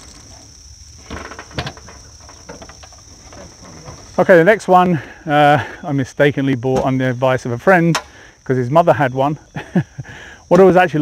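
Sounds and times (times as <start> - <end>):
crickets chirping drone: 0.0 - 11.0.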